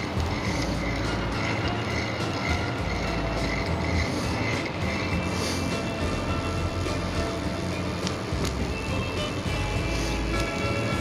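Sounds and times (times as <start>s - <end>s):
bicycle wheels rolling rumble: 0.0s - 11.0s
music of held notes: 0.0s - 11.0s.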